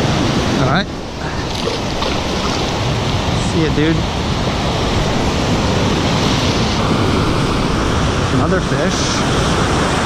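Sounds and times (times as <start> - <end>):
ocean surf breaking: 0.0 - 10.0.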